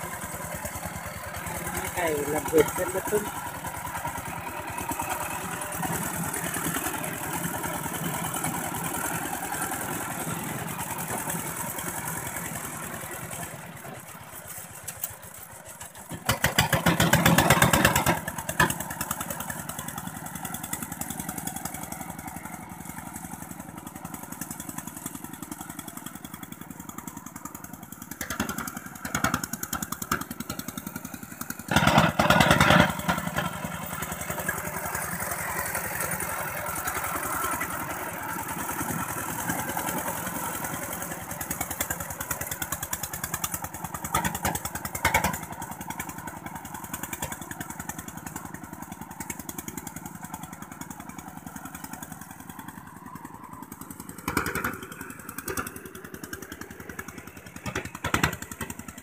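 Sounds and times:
diesel tractor engine chugging: 0:00.0 - 0:59.0.

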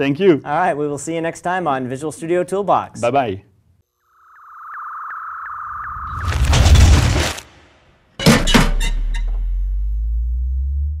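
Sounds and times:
deep low tone: 0:08.9 - 0:11.0.

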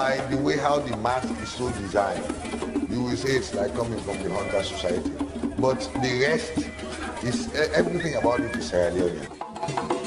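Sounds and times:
man talking: 0:00.0 - 0:02.3, 0:02.9 - 0:09.3.

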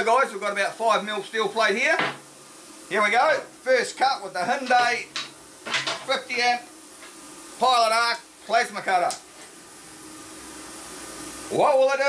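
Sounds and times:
plasma cutter hiss with faint hum: 0:00.0 - 0:12.0.

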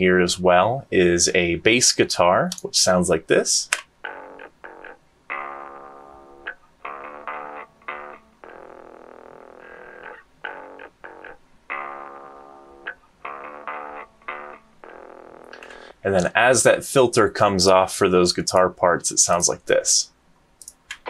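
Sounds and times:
muffled electric and acoustic guitars: 0:00.0 - 0:17.9
bass guitar: 0:04.0 - 0:16.6.

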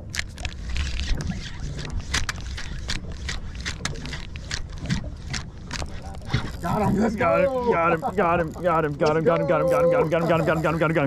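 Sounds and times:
low rumble of boat: 0:00.0 - 0:11.0
fishing reel clicking: 0:00.1 - 0:11.0.

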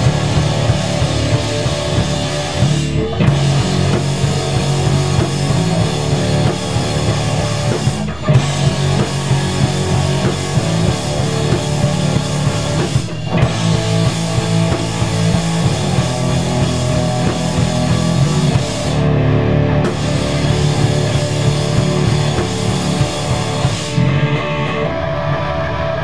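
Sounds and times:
bass guitar: 0:00.0 - 0:26.0
drum kit: 0:00.0 - 0:26.0
electric guitars: 0:00.0 - 0:26.0.

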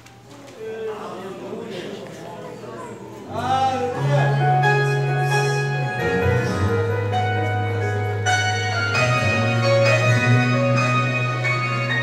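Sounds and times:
sustained keyboard chords: 0:03.3 - 0:12.0.

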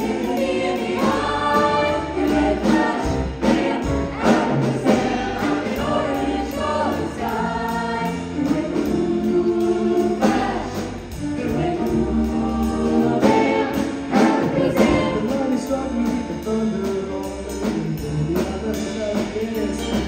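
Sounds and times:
choir singing in close harmony: 0:00.0 - 0:15.7
drum kit and cymbals: 0:00.0 - 0:20.0.

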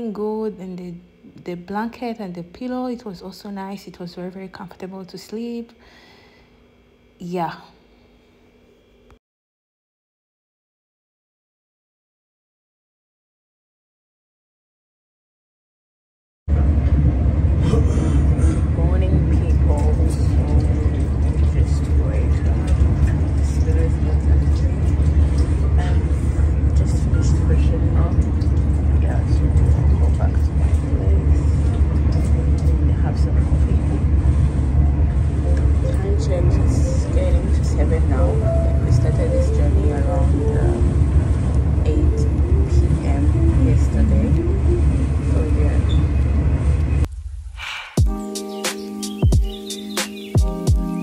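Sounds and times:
train rumbling: 0:16.5 - 0:47.1
indistinct voices talking: 0:35.4 - 0:46.2.

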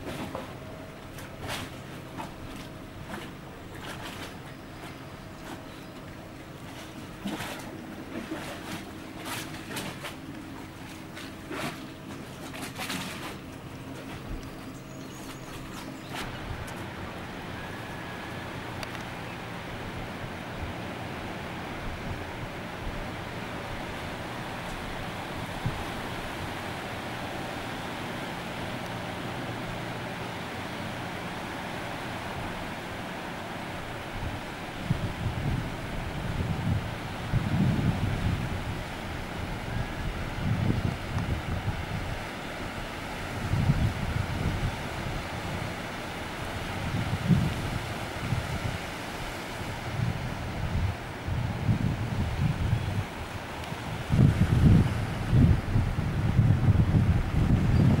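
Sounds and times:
choppy sea: 0:00.0 - 0:58.0
low steady hum: 0:00.0 - 0:58.0
wind buffeting microphone: 0:33.7 - 0:58.0.

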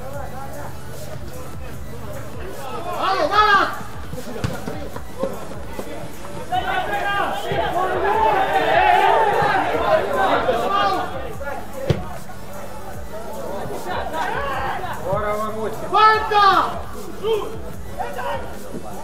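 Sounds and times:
footballers calling out: 0:00.0 - 0:19.0
loud shouts: 0:02.6 - 0:03.9, 0:06.4 - 0:11.7, 0:15.8 - 0:18.6.

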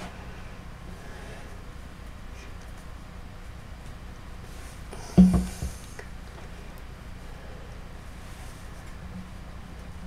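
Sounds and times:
low electrical hum: 0:00.0 - 0:10.0
soft rustles of hands: 0:08.1 - 0:10.0.

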